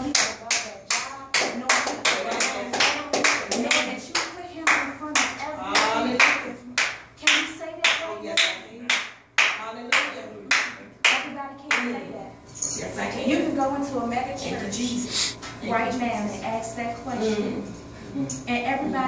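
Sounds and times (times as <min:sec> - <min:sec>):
group clapping in rhythm: 0:00.0 - 0:12.0.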